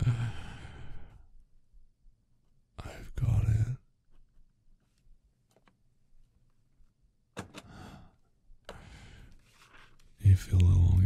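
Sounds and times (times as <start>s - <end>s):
man sighing: 0.0s - 1.2s.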